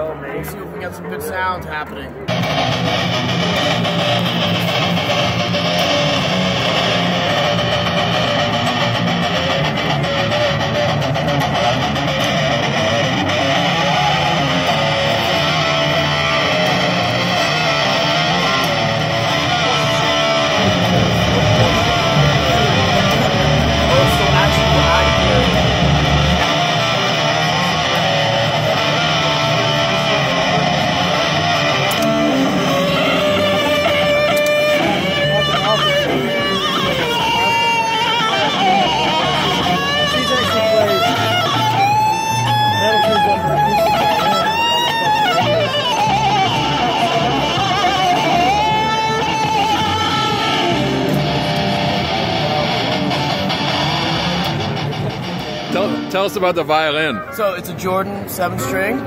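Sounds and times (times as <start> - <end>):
distorted electric violin metal playing: 2.3 - 59.0.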